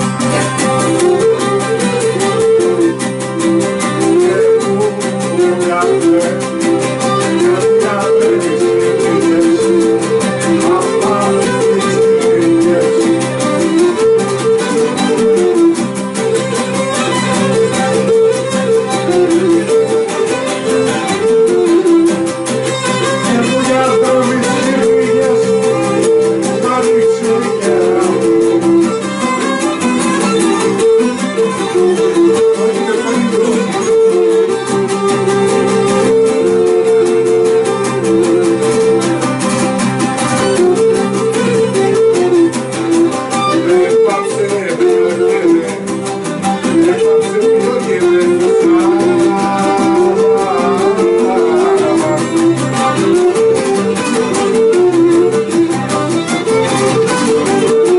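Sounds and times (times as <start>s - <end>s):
bowed lyra melody: 0.0s - 57.9s
lute strumming dance rhythm: 0.0s - 57.9s.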